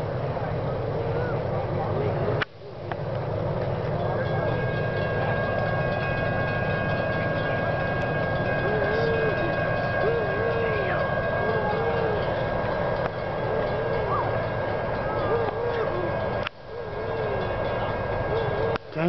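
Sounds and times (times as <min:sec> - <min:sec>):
diesel locomotive rumble: 0:00.0 - 0:19.0
thin steady tone: 0:00.3 - 0:19.0.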